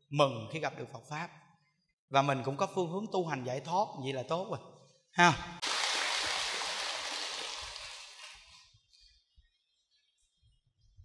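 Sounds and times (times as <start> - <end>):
audience applauding: 5.6 - 8.6.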